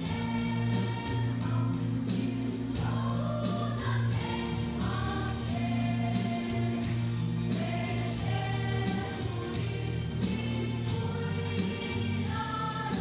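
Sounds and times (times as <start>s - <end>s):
choir singing gospel song: 0.0s - 13.0s
instrumental backing with bass: 0.0s - 13.0s.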